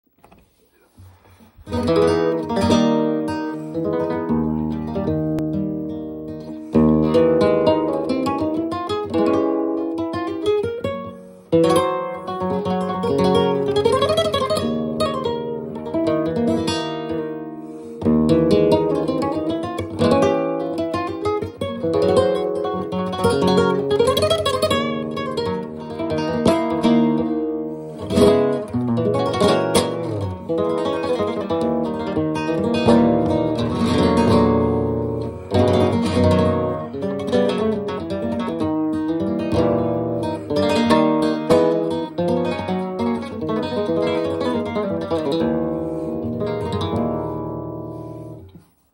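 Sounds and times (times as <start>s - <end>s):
flamenco guitar playing: 0.4s - 48.9s.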